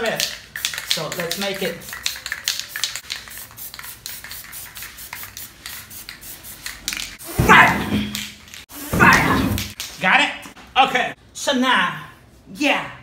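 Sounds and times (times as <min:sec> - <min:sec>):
spray-paint can hissing: 0:00.2 - 0:07.2.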